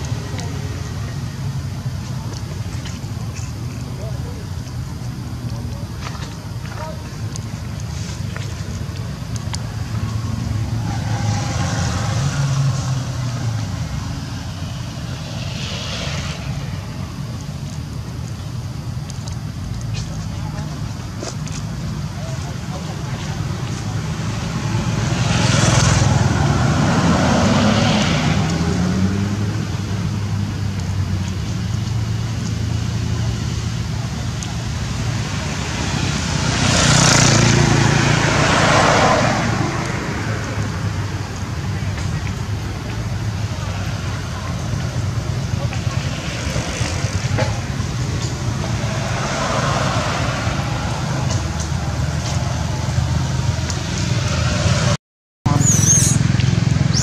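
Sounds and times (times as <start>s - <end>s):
voices talking: 0.0s - 27.6s, 55.5s - 57.0s
road traffic passing: 0.0s - 57.0s.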